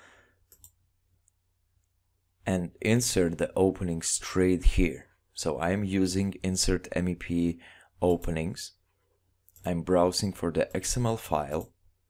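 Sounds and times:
faint mouse clicks: 0:00.5 - 0:02.0.

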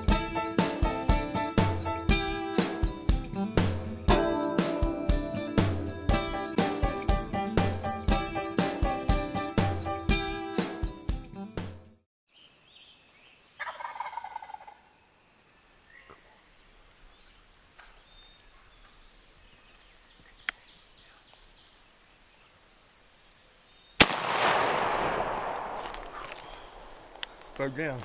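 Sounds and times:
faint songbird chirps: 0:12.3 - 0:24.0, 0:26.3 - 0:28.0
turkey gobbling: 0:13.6 - 0:15.0
shotgun blast with echo: 0:24.0 - 0:26.9.

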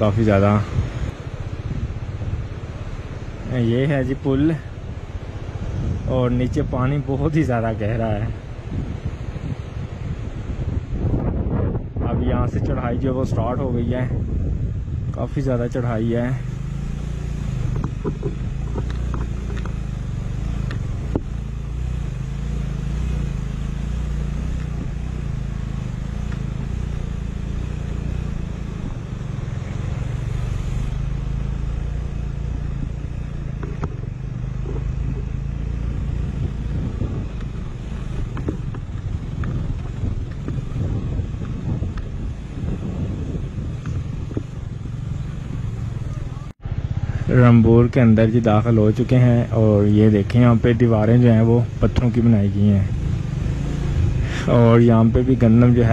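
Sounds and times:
road noise: 0:00.0 - 0:55.9
motorcycle engine under load: 0:16.2 - 0:55.9.

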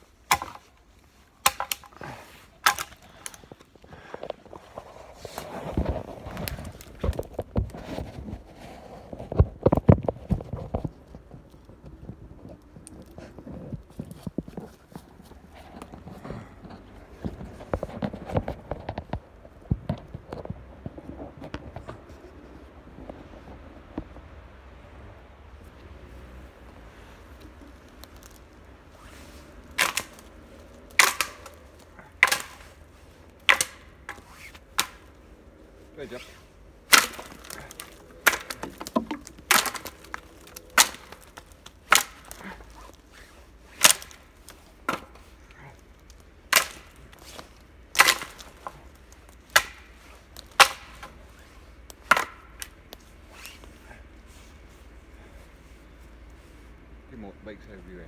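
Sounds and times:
branches snapping: 0:00.0 - 0:08.5, 0:09.1 - 0:20.7, 0:25.6 - 0:56.3.

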